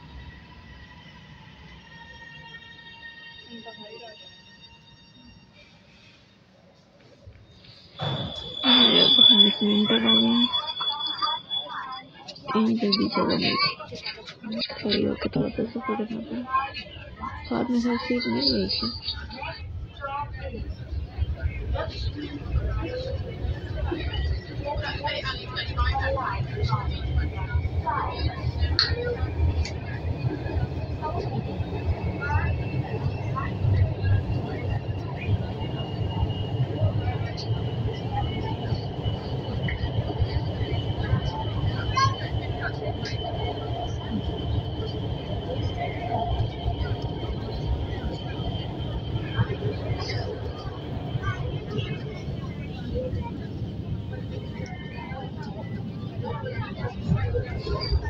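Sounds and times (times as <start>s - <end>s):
faint high whine: 0.0s - 13.6s, 15.8s - 58.0s
faint passenger voices: 0.0s - 58.0s
train running low rumble: 0.0s - 58.0s.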